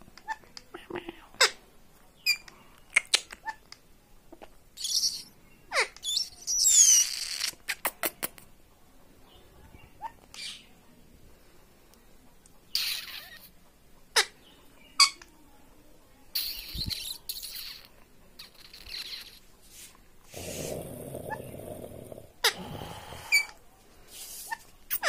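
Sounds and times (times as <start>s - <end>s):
soft hissy chatter: 0.0s - 25.0s
parakeet squeaky calls: 4.8s - 7.6s, 12.7s - 13.5s, 16.4s - 19.4s
rough low noise: 20.2s - 23.8s.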